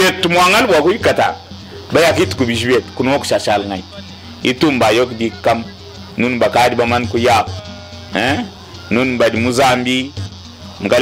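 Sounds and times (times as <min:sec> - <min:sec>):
musical backing: 0:00.0 - 0:11.0
person singing: 0:07.2 - 0:09.0.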